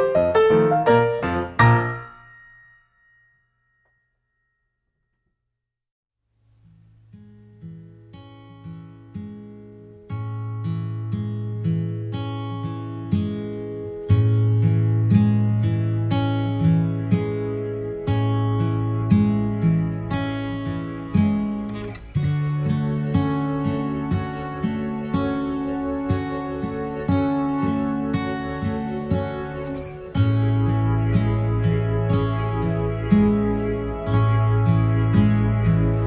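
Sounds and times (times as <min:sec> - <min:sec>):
plucked acoustic guitar music: 0:00.0 - 0:02.5, 0:06.5 - 0:36.0.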